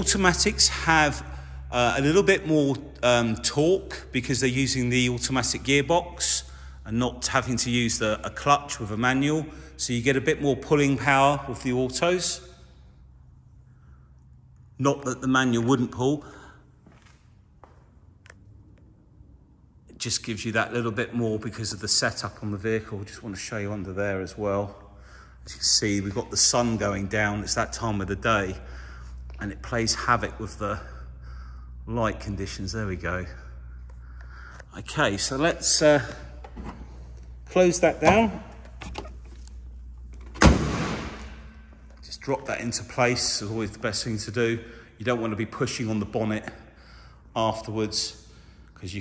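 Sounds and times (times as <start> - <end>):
room hum: 0.0 - 49.0
car bonnet slamming shut: 36.4 - 37.0, 40.2 - 41.6.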